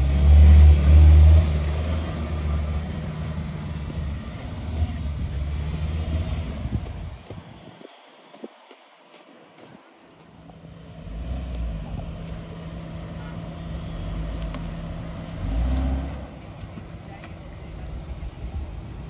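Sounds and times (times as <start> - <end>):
car engine revving: 0.0 - 7.4, 10.7 - 16.6.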